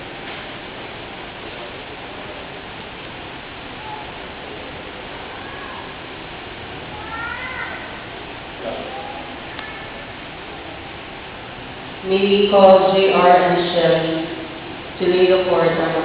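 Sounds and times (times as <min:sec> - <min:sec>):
steady background noise: 0:00.0 - 0:16.0.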